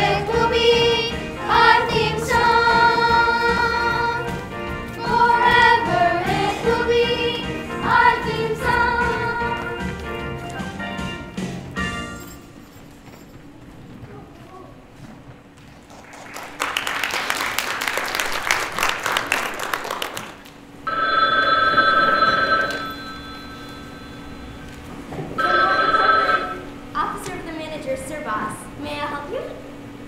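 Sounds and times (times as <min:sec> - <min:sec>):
audience applause: 0:15.8 - 0:20.6
telephone bell ringing: 0:20.9 - 0:24.4, 0:25.4 - 0:26.7.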